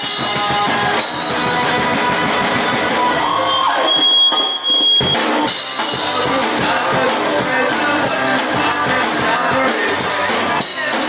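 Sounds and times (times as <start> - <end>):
electric guitars: 0.0 - 4.4, 5.0 - 11.0
bass guitar: 0.0 - 11.0
drum kit: 0.0 - 11.0.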